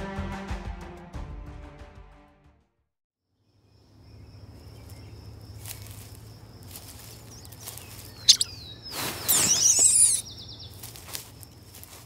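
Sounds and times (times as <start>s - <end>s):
insects: 3.4s - 12.0s
bird calls: 3.7s - 12.0s
high twittering calls: 6.8s - 11.6s.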